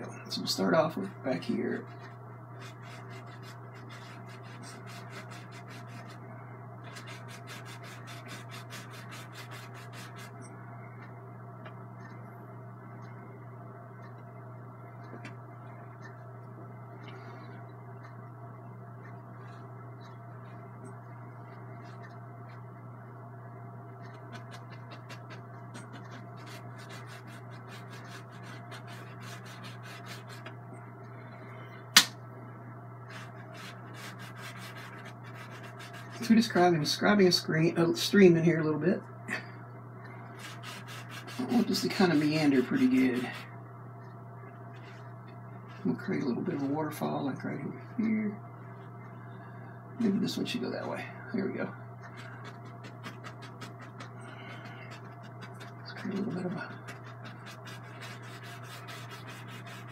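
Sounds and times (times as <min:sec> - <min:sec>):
steady low hum: 0:00.0 - 0:59.9
brush scratching on canvas: 0:01.8 - 0:06.2, 0:06.8 - 0:10.4, 0:24.3 - 0:30.5, 0:33.1 - 0:36.3, 0:40.4 - 0:43.5, 0:52.1 - 0:59.9
sharp click: 0:31.9 - 0:32.2.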